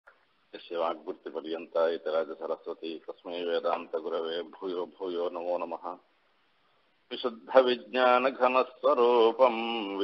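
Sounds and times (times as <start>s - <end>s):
man chanting: 7.1s - 10.0s.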